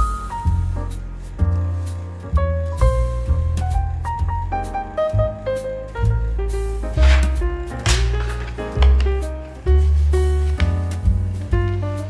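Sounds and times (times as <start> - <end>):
mellow instrumental music: 0.0 - 12.0.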